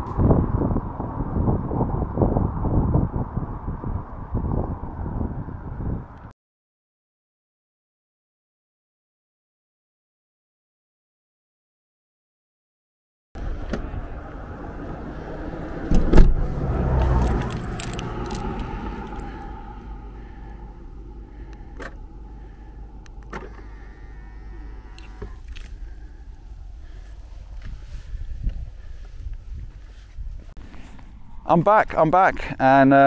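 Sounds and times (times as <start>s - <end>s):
sliding van door slamming: 15.8s - 17.0s.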